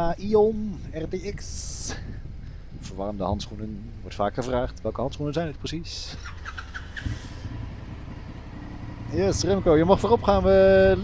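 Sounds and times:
motorcycle engines idling: 0.0s - 11.0s.

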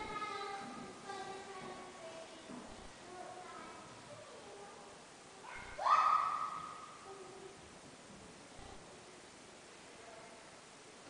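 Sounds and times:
high-pitched yell: 5.5s - 7.0s.

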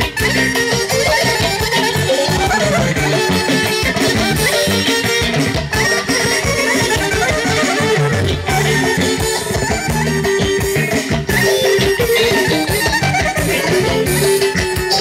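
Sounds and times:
band playing traditional dance music: 0.0s - 15.0s
saxophone lead: 0.0s - 15.0s.

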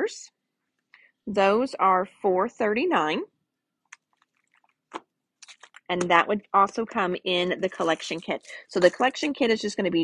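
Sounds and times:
woman speaking: 0.0s - 0.4s, 1.2s - 3.4s, 5.8s - 10.0s
cellophane crinkle: 4.1s - 5.9s.

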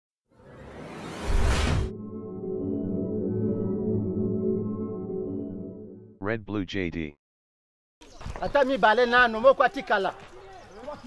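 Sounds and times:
ambient music chord: 1.9s - 6.2s.

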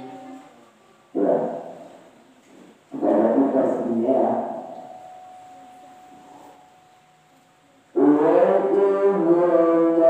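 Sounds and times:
person chanting through microphone: 0.0s - 2.0s, 7.9s - 10.0s.

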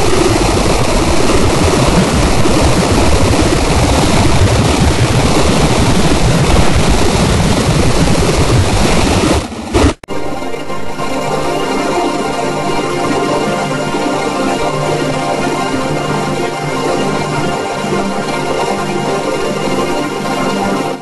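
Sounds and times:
loud dense noise: 0.0s - 21.0s
music with held tones: 10.1s - 21.0s.

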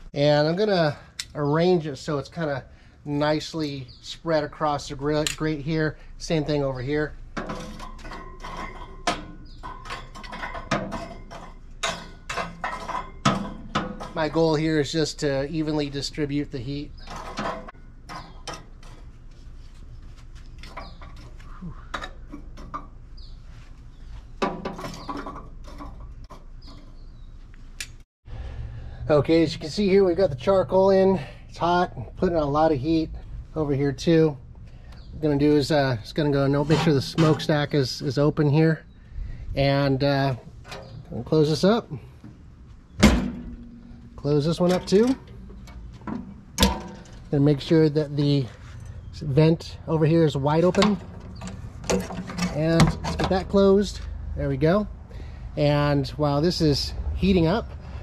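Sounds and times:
metal lid bang with ring-out: 43.0s - 45.2s.

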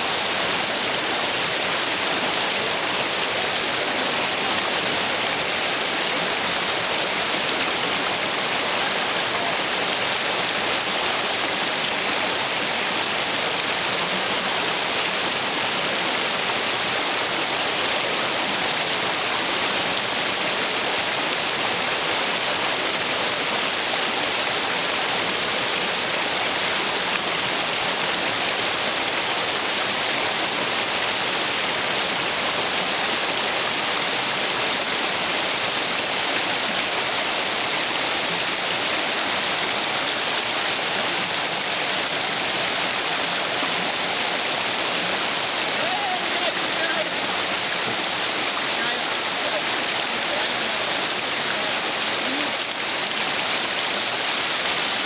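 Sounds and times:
creek rushing over stones: 0.0s - 55.0s.

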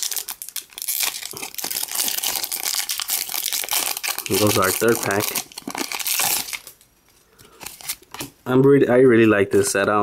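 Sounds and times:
foil wrapper crinkling and tearing: 0.0s - 6.9s.

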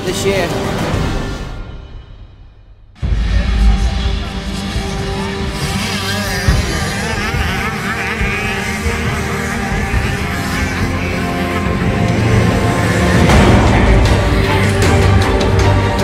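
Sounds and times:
motocross bike engines revving: 3.1s - 16.0s.

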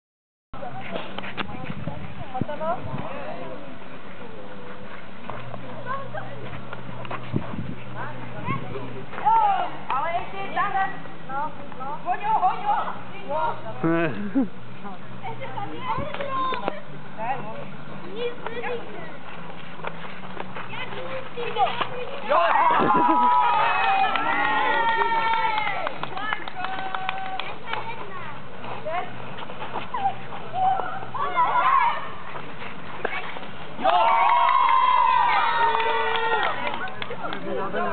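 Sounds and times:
children calling and shouting: 5.5s - 17.1s, 18.0s - 37.9s
children shouting: 22.2s - 25.8s, 30.0s - 32.2s, 33.8s - 36.6s.

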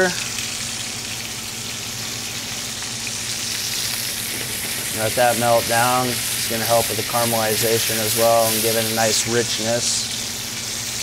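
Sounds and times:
steaks sizzling in frying pan: 0.0s - 11.0s.

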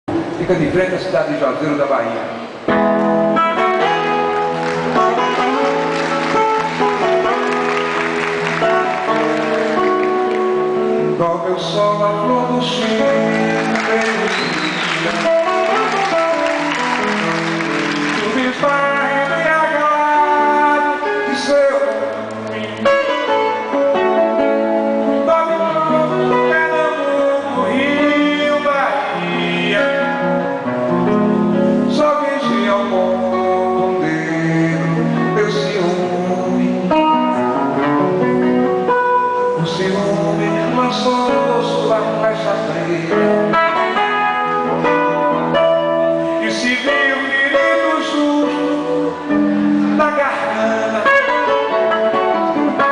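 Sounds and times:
guitar: 0.0s - 52.9s
man singing: 10.8s - 16.6s, 18.0s - 24.2s, 25.0s - 52.9s.

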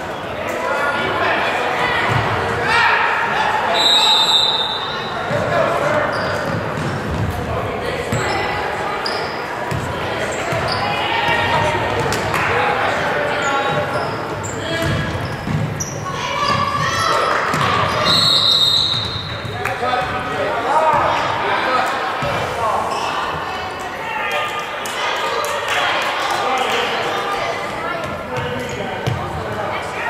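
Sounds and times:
people calling out and chattering: 0.0s - 30.0s.

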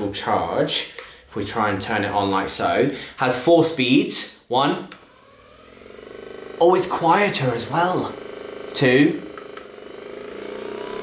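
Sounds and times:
massage gun motor pulsing: 5.0s - 11.0s.

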